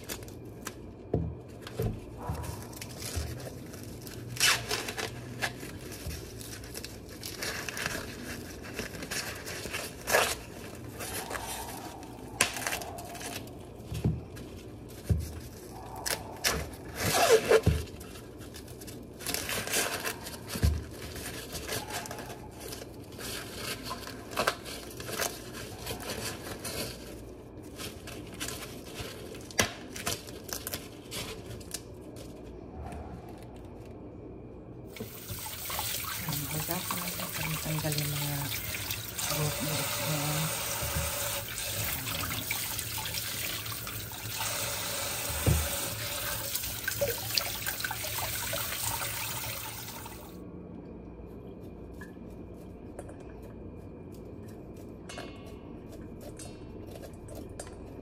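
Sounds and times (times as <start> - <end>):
corn husks tearing and rustling: 0.0 - 34.0.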